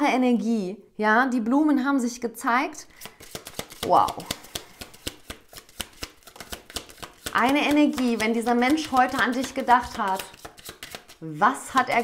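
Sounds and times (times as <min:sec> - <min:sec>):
cards being shuffled: 0:02.9 - 0:12.0.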